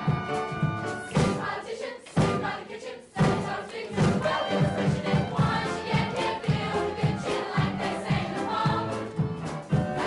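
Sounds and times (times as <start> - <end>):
band backing: 0.0 - 10.0
chorus of young voices singing: 1.1 - 10.0.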